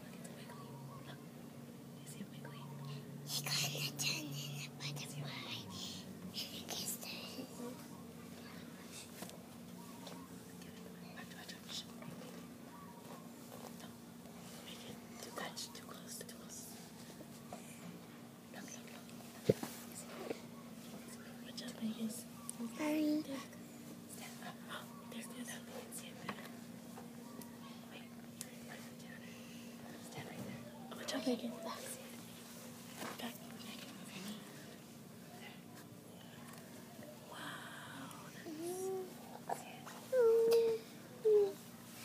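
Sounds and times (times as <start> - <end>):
hushed whispering voices: 0.0 - 1.3, 2.0 - 9.2, 9.8 - 17.0, 18.5 - 26.6, 27.2 - 32.4, 33.1 - 41.6
steady low hum: 0.0 - 42.0.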